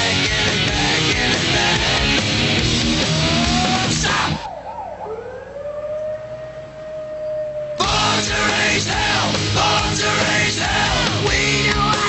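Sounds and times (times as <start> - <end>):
heavy rock band playing: 0.0 - 4.4, 7.8 - 12.0
siren-like wailing tone: 3.0 - 7.9.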